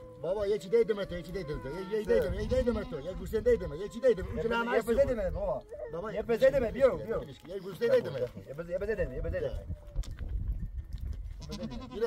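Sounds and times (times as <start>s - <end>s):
goat bleating: 0.6s - 5.0s, 5.6s - 8.5s, 11.3s - 12.0s.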